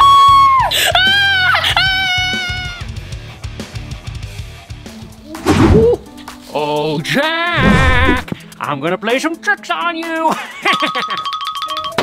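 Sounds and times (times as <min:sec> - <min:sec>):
background music with guitar: 0:00.0 - 0:10.7
person screaming: 0:07.1 - 0:08.3.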